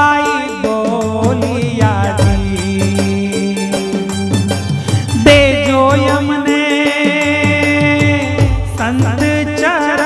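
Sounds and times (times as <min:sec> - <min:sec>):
instrumental accompaniment: 0:00.0 - 0:10.0
man singing devotional song: 0:00.0 - 0:10.0.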